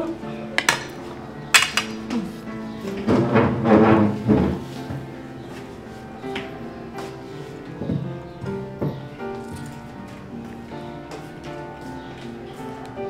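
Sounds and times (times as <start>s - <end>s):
background music sustained tones: 0.0s - 13.0s.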